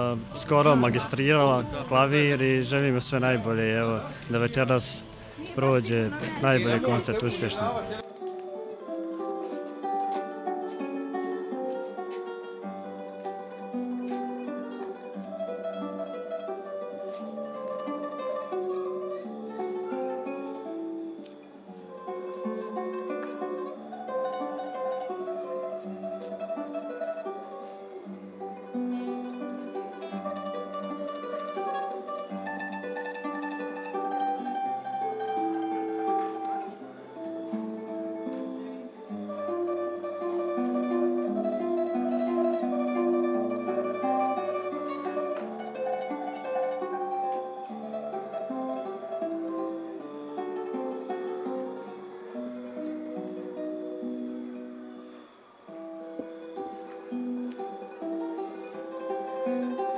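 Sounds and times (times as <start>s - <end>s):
classical guitar fingerpicked: 0.0s - 59.9s.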